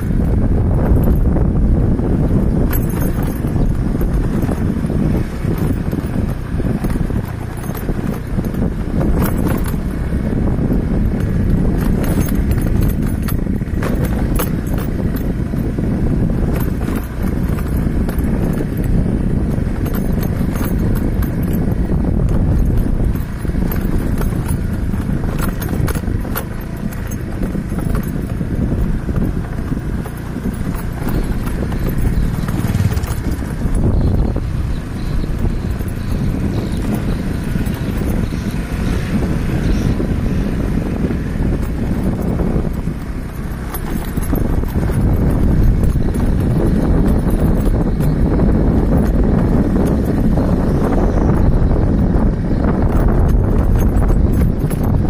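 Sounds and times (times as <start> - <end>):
knocks and rattles from bumps: 0.0 - 55.0
vehicle rumbling on gravel road: 0.0 - 55.0.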